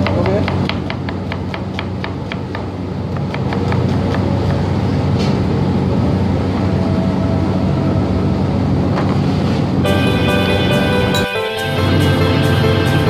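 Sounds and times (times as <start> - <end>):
kitchen machinery hum: 0.0 - 13.0.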